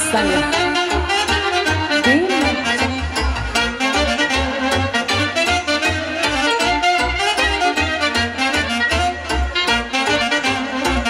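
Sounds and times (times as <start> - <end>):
accordion: 0.0 - 11.0
keyboard: 0.0 - 11.0
saxophone: 0.0 - 11.0
trumpet: 0.0 - 11.0
wind instrument swooping in pitch: 0.0 - 11.0.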